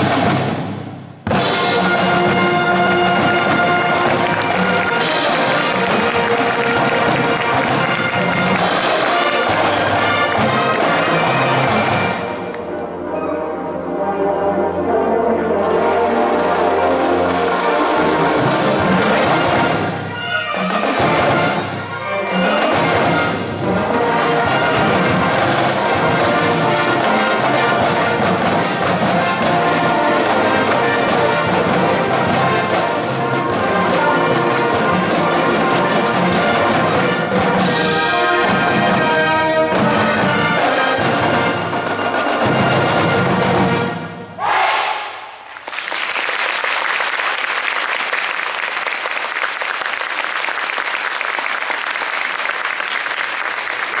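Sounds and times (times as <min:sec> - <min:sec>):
marching band playing: 0:00.0 - 0:54.0
audience applause: 0:03.0 - 0:12.4, 0:45.4 - 0:54.0.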